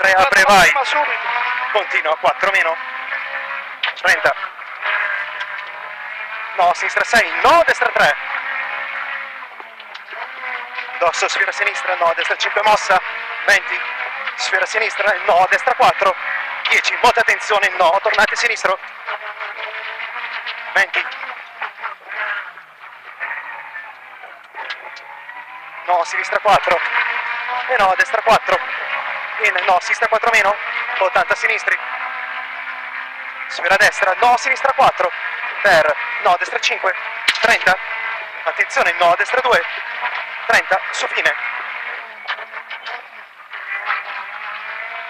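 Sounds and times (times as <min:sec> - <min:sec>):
rally car engine from cabin: 0:00.0 - 0:45.0
road noise: 0:00.0 - 0:45.0.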